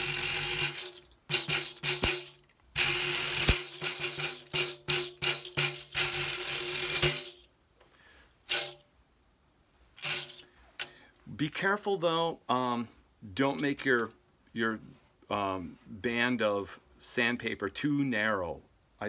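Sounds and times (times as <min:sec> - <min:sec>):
tambourine jingle roll: 0:00.0 - 0:07.6, 0:08.5 - 0:09.0, 0:10.0 - 0:11.0.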